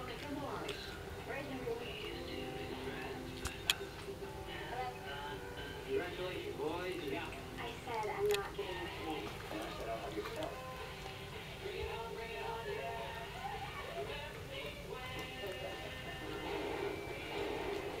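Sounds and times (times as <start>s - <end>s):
television music: 0.0s - 18.0s
television voices: 0.0s - 18.0s.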